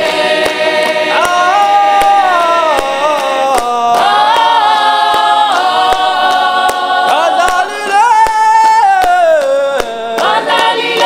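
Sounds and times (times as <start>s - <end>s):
choir singing held chords: 0.0s - 11.0s
hand claps: 0.0s - 11.0s.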